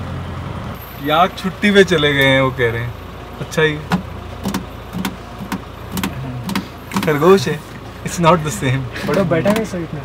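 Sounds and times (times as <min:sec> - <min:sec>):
vehicle engine idling: 0:00.0 - 0:10.0
sharp clicks: 0:03.9 - 0:07.2.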